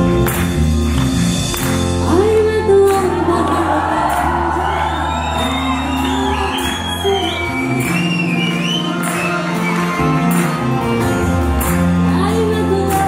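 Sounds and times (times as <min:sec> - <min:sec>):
live band music with singing: 0:00.0 - 0:13.0.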